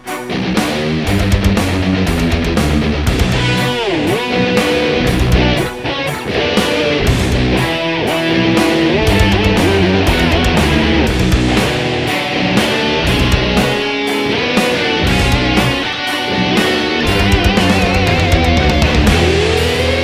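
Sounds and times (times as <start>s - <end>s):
bass: 0.0s - 20.0s
electric guitar lead with bends: 0.0s - 20.0s
steady drum beat: 0.0s - 20.0s.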